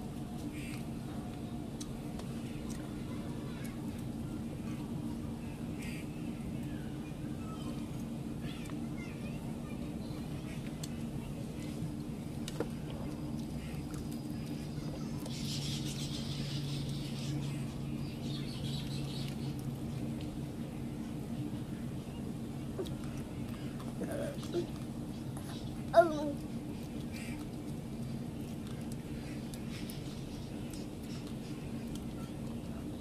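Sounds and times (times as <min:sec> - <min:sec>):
steady low hum: 0:00.0 - 0:33.0
high hissing chatter: 0:13.0 - 0:19.4.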